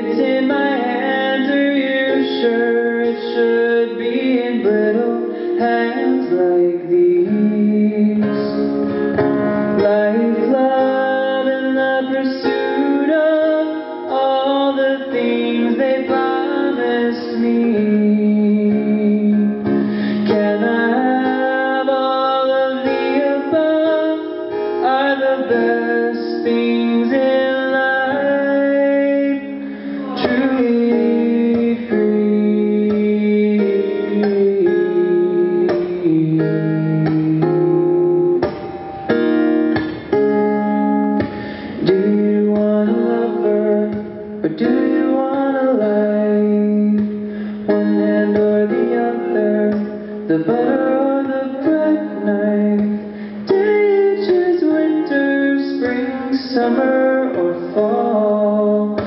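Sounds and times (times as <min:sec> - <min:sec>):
man singing: 0:00.0 - 0:38.6, 0:41.2 - 0:59.0
acoustic guitar: 0:00.0 - 0:59.0.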